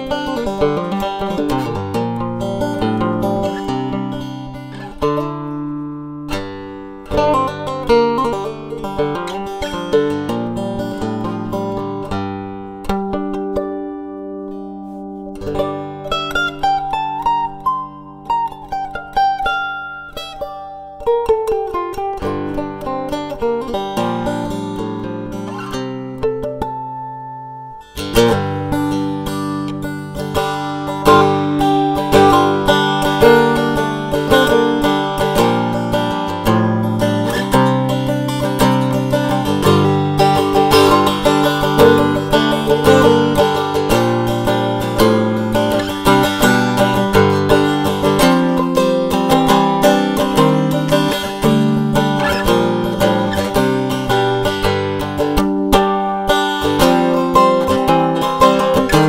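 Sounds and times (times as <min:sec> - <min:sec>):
cigar box guitar picking: 0:21.0 - 0:59.0.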